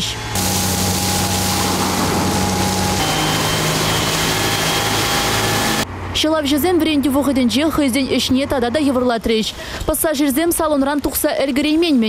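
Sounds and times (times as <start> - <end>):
pump engine hum: 0.3 - 5.9
water jets spraying: 0.4 - 5.8.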